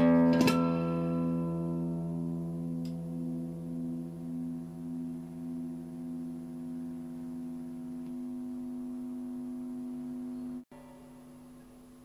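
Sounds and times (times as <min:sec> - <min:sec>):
held guitar chord: 0:00.0 - 0:11.7.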